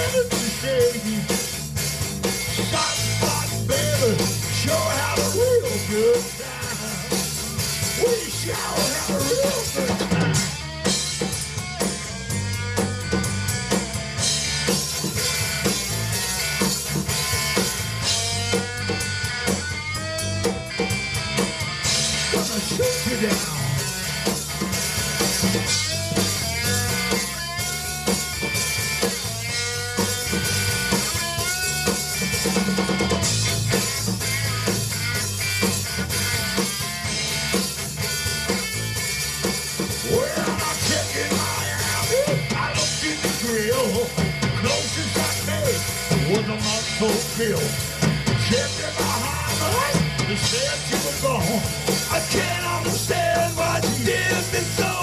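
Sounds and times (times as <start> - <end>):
bass guitar: 0.0 - 55.0
drum kit: 0.0 - 55.0
electric guitar lead with bent notes: 0.0 - 55.0.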